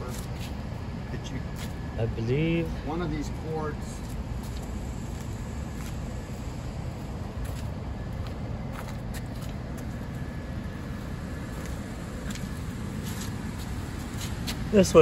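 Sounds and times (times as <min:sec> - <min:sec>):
shuffling footsteps: 0:00.0 - 0:01.9, 0:03.9 - 0:14.7
low outdoor rumble: 0:00.0 - 0:15.0.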